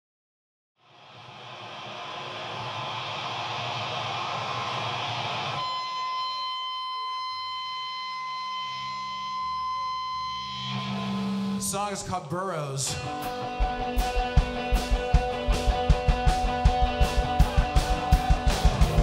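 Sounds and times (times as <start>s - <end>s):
distorted electric guitar feedback: 1.0s - 19.0s
drone of high tones: 2.2s - 11.7s.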